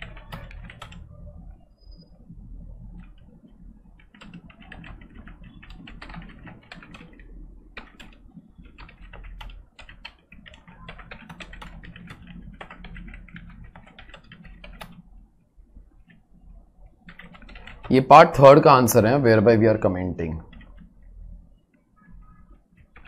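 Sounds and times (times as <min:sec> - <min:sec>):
computer keyboard typing: 0:00.0 - 0:01.2, 0:02.0 - 0:15.2, 0:15.8 - 0:18.1, 0:20.4 - 0:23.0.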